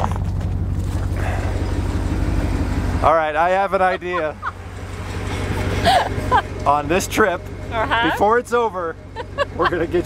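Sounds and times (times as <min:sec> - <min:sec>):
car engine low rumble: 0:00.0 - 0:10.0
tyres on dirt track: 0:00.0 - 0:10.0.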